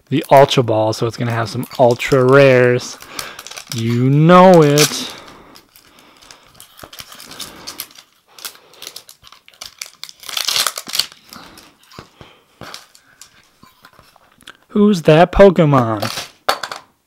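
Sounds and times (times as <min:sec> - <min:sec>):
plastic shrink wrap crinkling: 0:00.2 - 0:14.6, 0:15.8 - 0:16.4.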